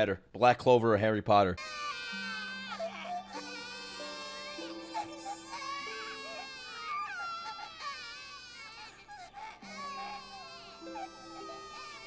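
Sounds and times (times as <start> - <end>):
babies crying: 1.6 - 12.0
soft background music: 1.6 - 12.0.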